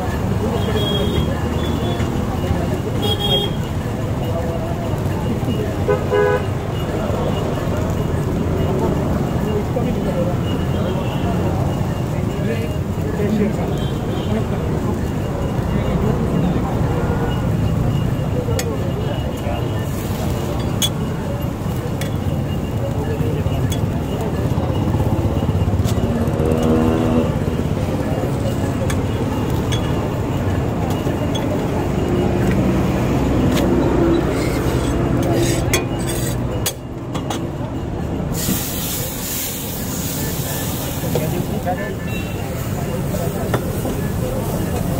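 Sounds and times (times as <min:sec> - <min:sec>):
people talking: 0:00.0 - 0:44.9
street stall background noise: 0:00.0 - 0:44.9
hot griddle hissing: 0:38.3 - 0:44.9.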